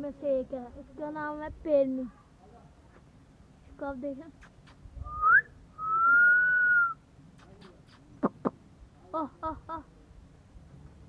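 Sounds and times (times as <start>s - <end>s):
person whistling: 5.1s - 7.0s.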